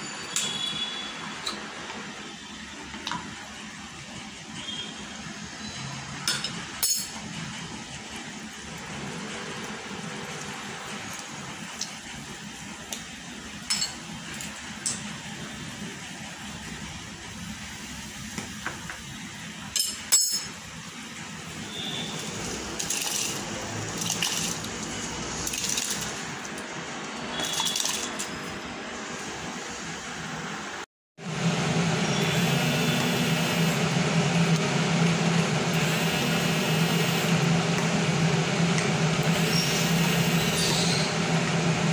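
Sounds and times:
water boiling and bubbling: 7.4 - 18.0, 20.8 - 29.6, 31.2 - 41.9.

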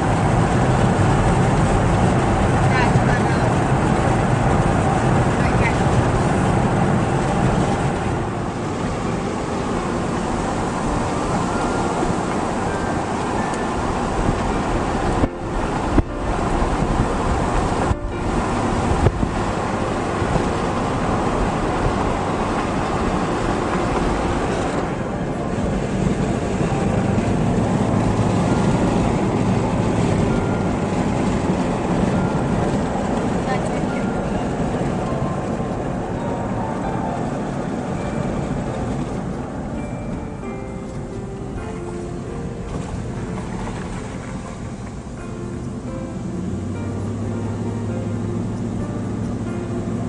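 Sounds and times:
road and engine noise in car: 0.0 - 50.0.

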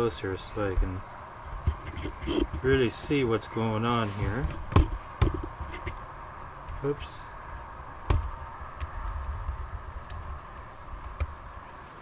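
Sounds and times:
sharp handling knock: 4.4 - 6.0, 8.1 - 8.9.

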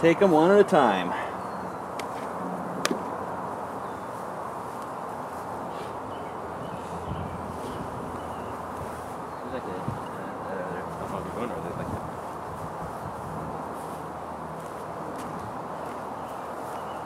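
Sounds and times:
honeybee swarm humming: 0.3 - 17.0.

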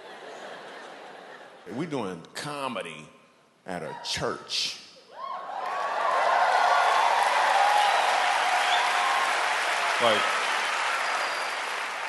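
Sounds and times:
audience laughing: 0.0 - 1.6
audience applauding: 5.5 - 12.0.

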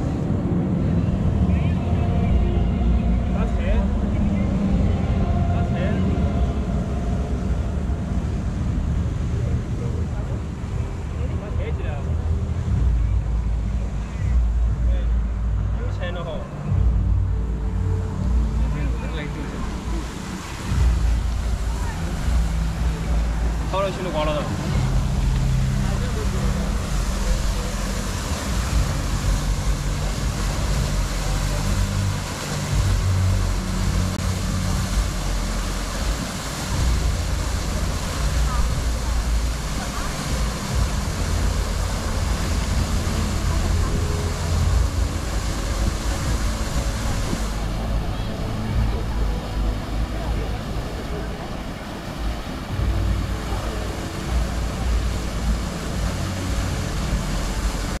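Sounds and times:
fountain water splashing: 0.0 - 58.0
people chattering: 0.0 - 58.0.

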